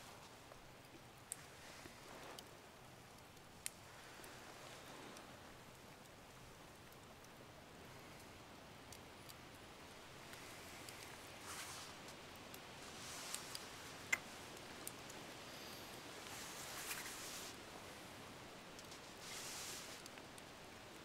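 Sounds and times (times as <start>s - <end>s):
soft rustling: 0.0s - 6.8s, 10.0s - 20.7s
faint steady hiss: 0.0s - 21.0s.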